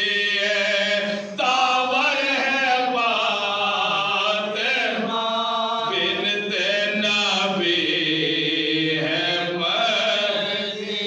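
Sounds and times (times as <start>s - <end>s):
men chanting unaccompanied: 0.0s - 11.0s.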